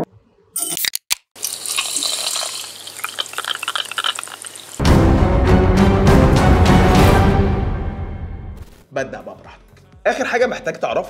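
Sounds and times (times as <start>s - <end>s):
liquid pouring and fizzing in glass: 1.4s - 4.8s
loud music: 4.8s - 8.8s.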